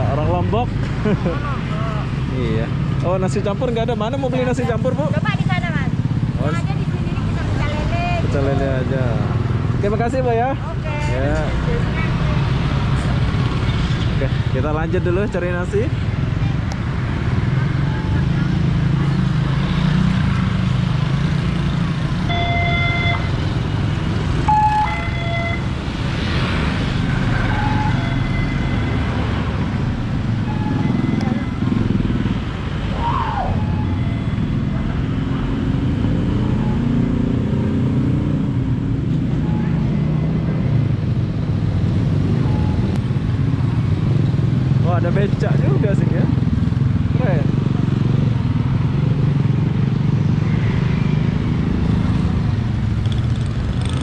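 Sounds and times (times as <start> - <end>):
motorcycles passing: 0.0 - 54.0
vehicle engine rumble: 0.0 - 54.0.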